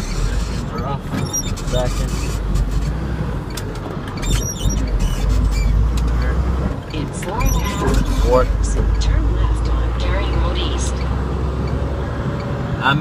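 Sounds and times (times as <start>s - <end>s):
truck engine rumble: 0.0s - 13.0s.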